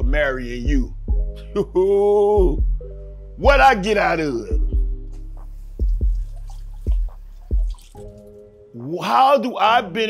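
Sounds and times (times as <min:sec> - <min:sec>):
low bass hum: 0:00.0 - 0:08.2.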